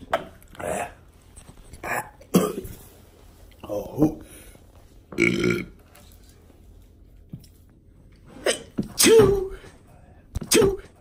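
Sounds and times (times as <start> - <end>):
person burping loudly: 5.1 - 5.8.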